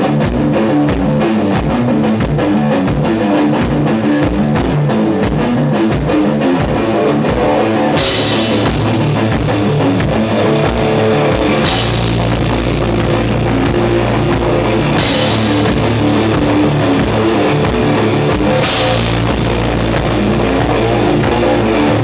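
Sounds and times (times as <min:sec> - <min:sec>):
drum kit playing: 0:00.0 - 0:22.0
electric guitar sustained chords: 0:00.0 - 0:22.0.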